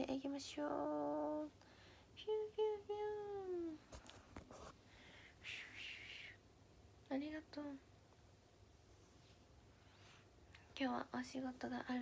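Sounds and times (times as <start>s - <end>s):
woman humming a tune: 2.2s - 3.8s.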